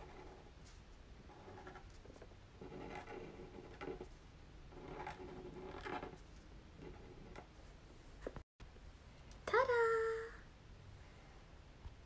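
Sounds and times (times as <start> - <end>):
pen scratching on paper: 0.0 - 0.6, 1.2 - 7.5.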